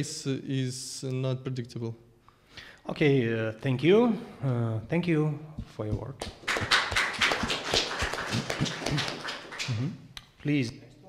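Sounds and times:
audience clapping: 0:06.1 - 0:10.0.

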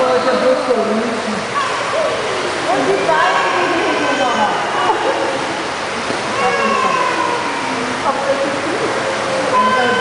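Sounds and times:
children's voices and calls: 0:01.4 - 0:10.0.

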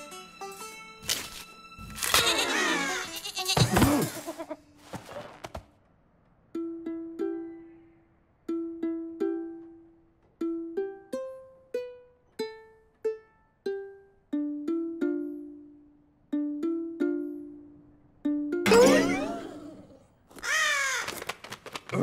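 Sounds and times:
ukulele plucked slowly: 0:06.5 - 0:19.8.

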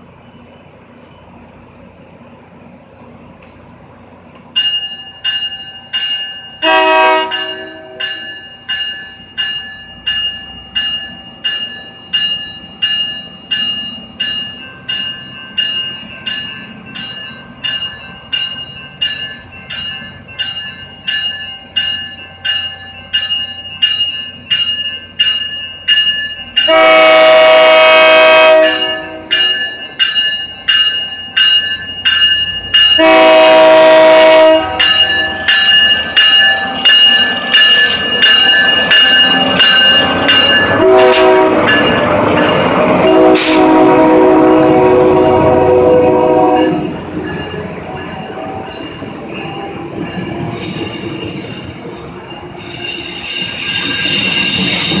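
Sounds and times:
locomotive bell ringing: 0:04.5 - 0:55.0
locomotive horn blast: 0:06.6 - 0:08.0, 0:26.7 - 0:29.4, 0:33.0 - 0:35.4, 0:40.7 - 0:41.8, 0:43.0 - 0:47.0.

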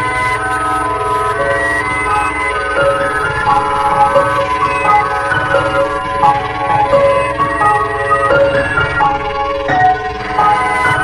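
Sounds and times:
electronic alarm tones: 0:00.0 - 0:11.0.

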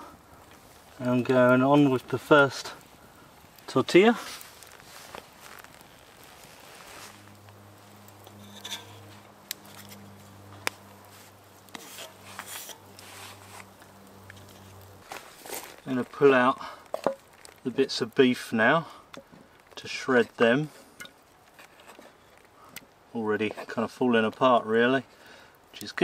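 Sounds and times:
wooden spatula clicks and scrapes: 0:03.6 - 0:16.2, 0:16.8 - 0:17.8, 0:21.0 - 0:24.4.

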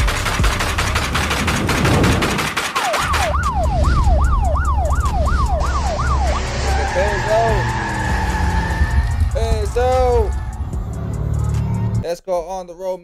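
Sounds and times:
police siren yelp: 0:03.0 - 0:11.0
deep bass: 0:03.3 - 0:12.1.

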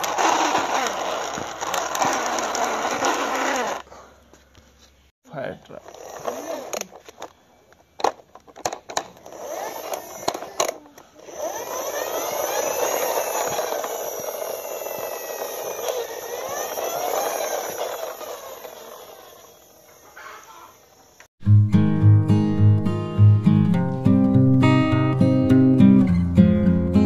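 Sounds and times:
toy whirring: 0:00.0 - 0:03.9, 0:05.7 - 0:07.4, 0:08.0 - 0:21.3
plastic toy clicking and knocking: 0:08.0 - 0:10.8.

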